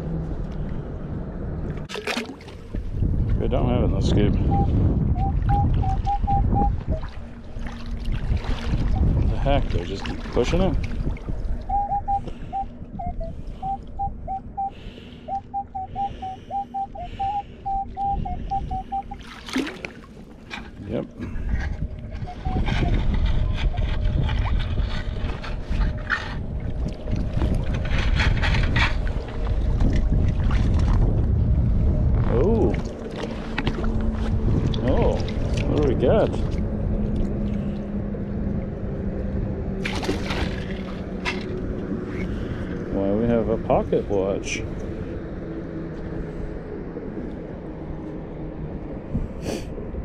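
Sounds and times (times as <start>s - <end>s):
metal detector short beeps: 4.5s - 6.7s.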